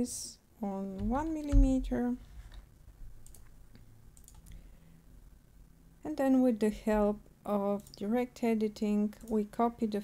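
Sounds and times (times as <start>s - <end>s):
computer mouse clicks: 3.2s - 4.6s.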